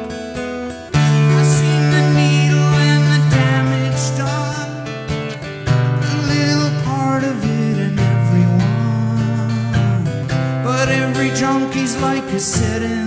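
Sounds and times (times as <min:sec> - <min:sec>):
strummed acoustic guitar: 0:00.0 - 0:13.0.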